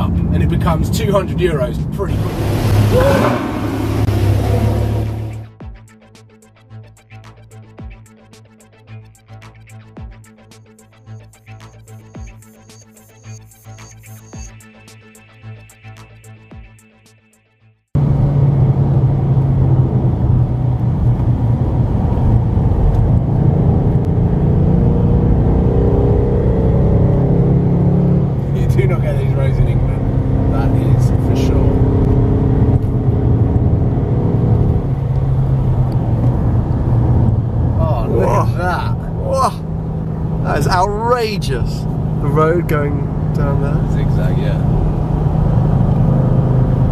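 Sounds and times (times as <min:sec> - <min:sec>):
people talking: 0:00.0 - 0:02.4, 0:28.6 - 0:31.8, 0:37.8 - 0:39.6, 0:40.4 - 0:44.7
car engine running: 0:00.0 - 0:05.5, 0:18.0 - 0:46.9
tyre and road noise: 0:00.0 - 0:05.5, 0:18.0 - 0:46.9.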